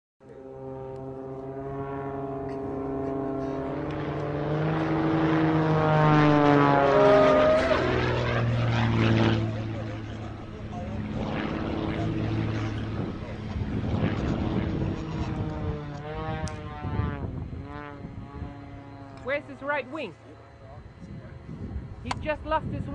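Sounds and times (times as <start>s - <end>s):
model airplane engine in flight: 0.2s - 22.9s.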